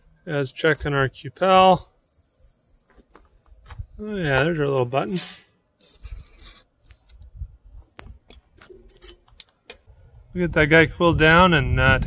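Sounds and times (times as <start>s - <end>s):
tongs scraping: 5.0s - 7.2s, 8.6s - 9.9s.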